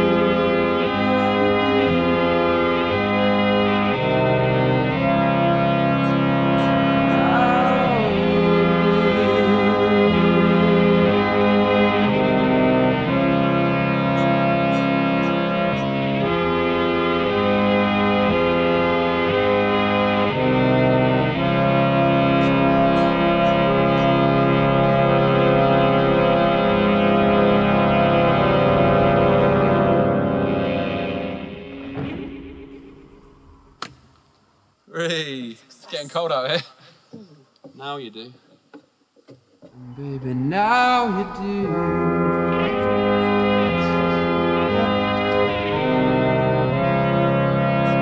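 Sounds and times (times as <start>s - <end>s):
bowed violin long notes: 0.0s - 18.9s, 39.8s - 48.0s
electric guitar: 0.0s - 34.0s, 39.7s - 48.0s
keyboard chords: 0.0s - 34.0s, 39.7s - 48.0s.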